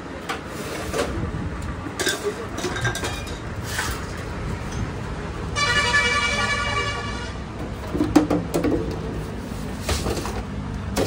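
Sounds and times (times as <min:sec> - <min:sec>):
low traffic rumble: 0:00.0 - 0:11.0
vehicle horn honking: 0:05.6 - 0:07.5.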